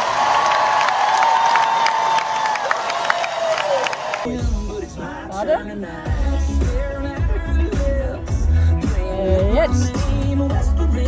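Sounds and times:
crowd cheering and applauding: 0.0s - 4.4s.

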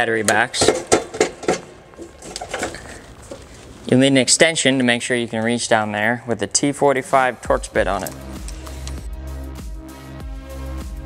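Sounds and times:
metal shield clinks and knocks: 0.5s - 3.1s.

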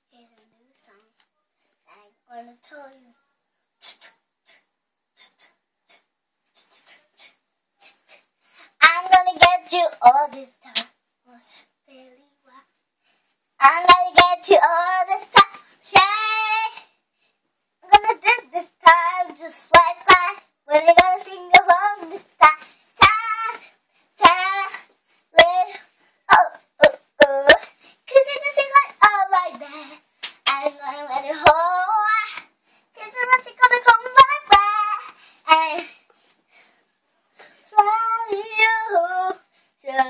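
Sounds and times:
girl singing: 5.2s - 12.6s, 13.6s - 17.0s, 17.8s - 36.1s, 37.4s - 40.0s.

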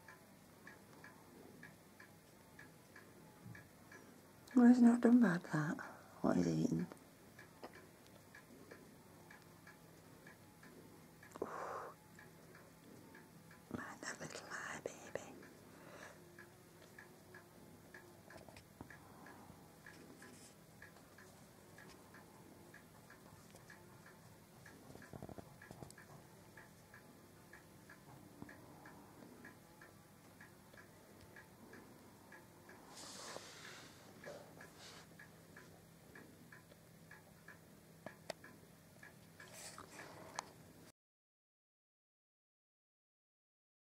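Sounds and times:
faint ticking: 0.0s - 40.9s.

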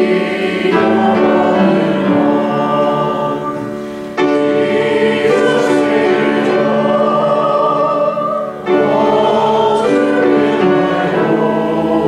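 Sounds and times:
congregation singing a hymn: 0.0s - 12.0s.

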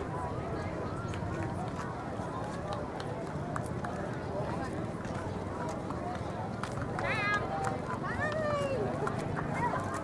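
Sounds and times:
crowd talking: 0.0s - 10.0s.

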